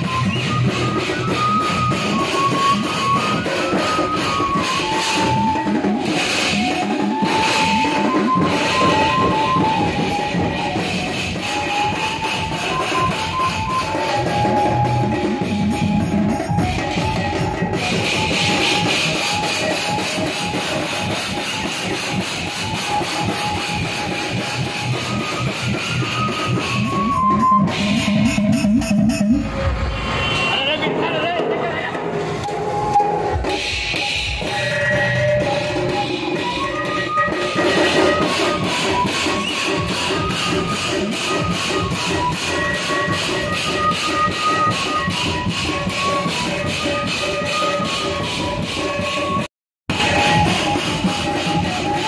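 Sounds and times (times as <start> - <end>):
high stepping melody: 0.0 - 30.6
electronic drum pad percussion: 0.0 - 52.0
electronic drum pad hits: 26.6 - 30.5.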